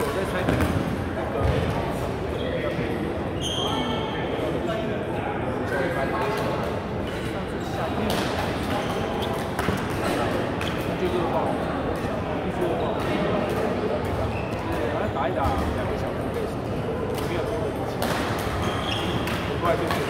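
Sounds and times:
echoing chatter in sports hall: 0:00.0 - 0:20.0
rackets hitting shuttlecock: 0:08.0 - 0:10.9, 0:17.1 - 0:20.0.

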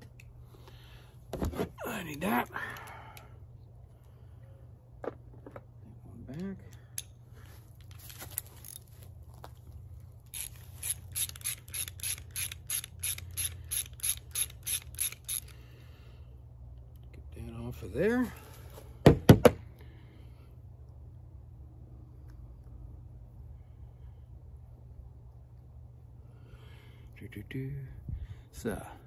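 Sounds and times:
ratchet wrench clicking: 0:10.3 - 0:15.6
loud sharp knocks: 0:19.0 - 0:19.6.

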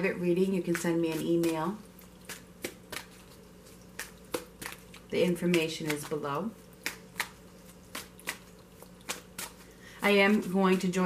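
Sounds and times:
cards snapping while shuffled: 0:06.8 - 0:09.7.

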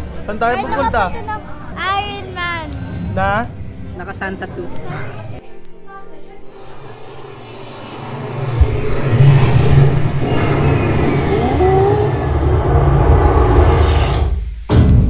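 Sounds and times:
gliding sweeping tones: 0:06.4 - 0:13.7
loud low rumble: 0:06.6 - 0:14.0.

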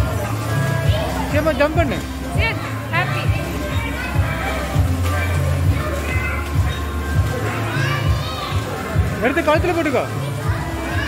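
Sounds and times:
children's voices: 0:00.0 - 0:09.4, 0:10.0 - 0:11.0.

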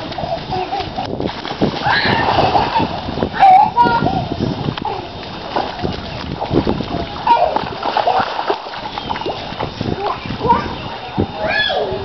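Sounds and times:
water splashing in puddle: 0:00.0 - 0:03.3, 0:04.4 - 0:10.2.

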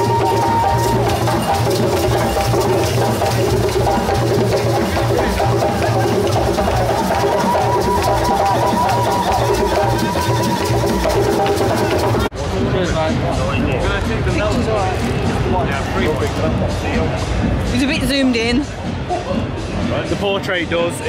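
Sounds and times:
hand drumming: 0:00.0 - 0:12.3
melody over drums: 0:00.0 - 0:20.0.

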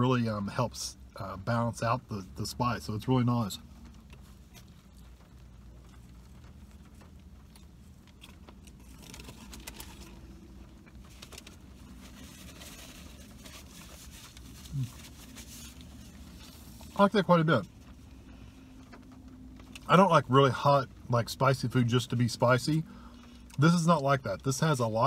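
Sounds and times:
steady low hum: 0:00.0 - 0:24.0
man chewing food: 0:03.8 - 0:17.0
paper wrapper crinkling: 0:05.9 - 0:17.0.

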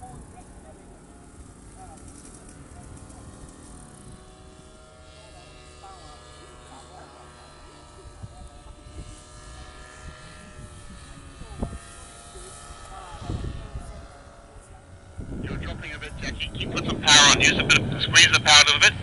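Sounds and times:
paramotor engine droning overhead: 0:00.0 - 0:19.0.

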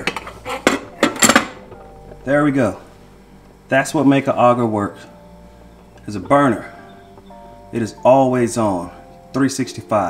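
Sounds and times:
metal cover plate clinking: 0:00.0 - 0:02.0.

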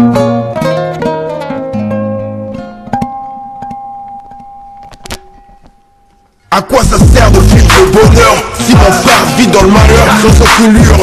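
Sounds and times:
plucked string note ringing: 0:00.0 - 0:06.4.

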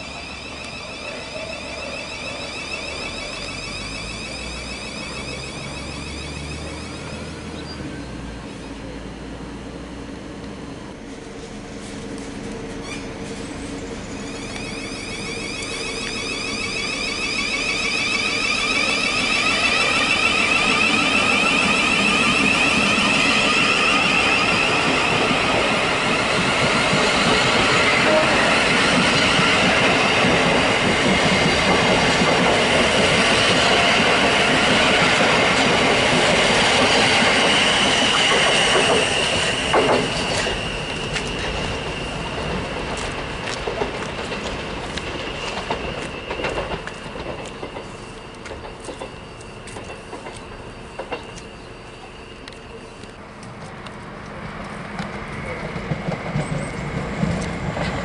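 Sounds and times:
electric train motor whine: 0:00.0 - 0:58.0
train wheels on rails: 0:00.0 - 0:58.0.

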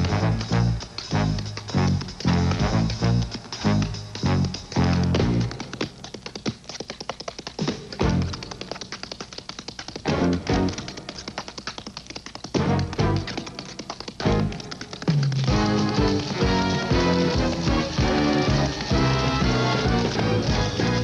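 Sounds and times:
tap shoes clicking on stage floor: 0:00.0 - 0:21.0.

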